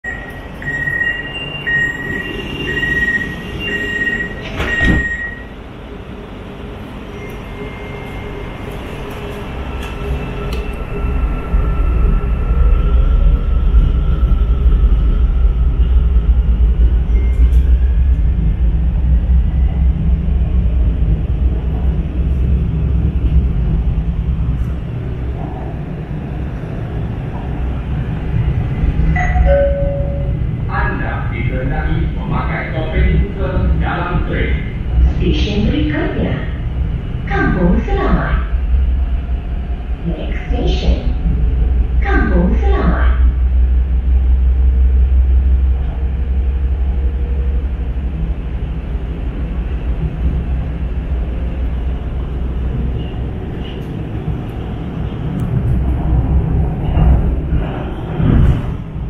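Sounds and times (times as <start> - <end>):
door closing warning beeps: 0.0 - 5.5
wheels rumbling on track: 0.0 - 59.0
train doors thumping shut: 4.2 - 5.4.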